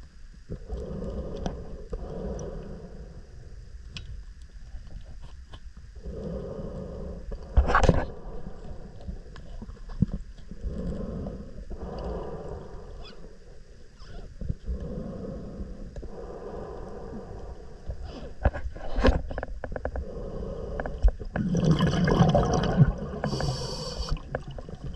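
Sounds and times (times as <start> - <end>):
muffled underwater breathing: 0.5 - 3.8, 6.0 - 24.9
faint clicks: 11.9 - 12.3.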